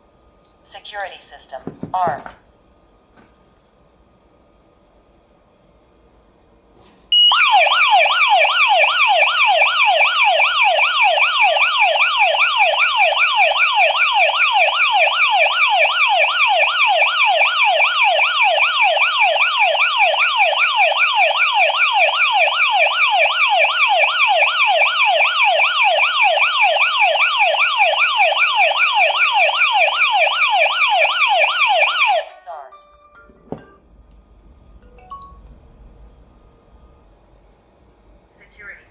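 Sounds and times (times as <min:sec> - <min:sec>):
alarm siren wailing: 0:07.1 - 0:38.9.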